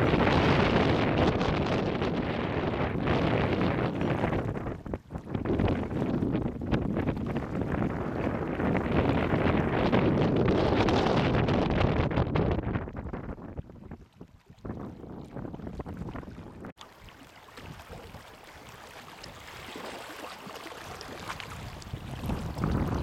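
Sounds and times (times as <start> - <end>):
wind buffeting microphone: 0.0 - 16.8, 20.9 - 23.0.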